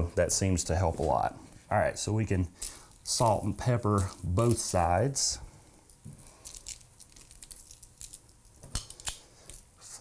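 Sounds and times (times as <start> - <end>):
parchment paper crinkling: 2.5 - 10.0.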